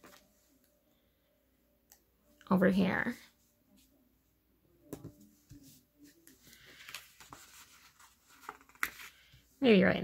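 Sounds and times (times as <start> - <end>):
paper rustling: 5.2 - 9.4.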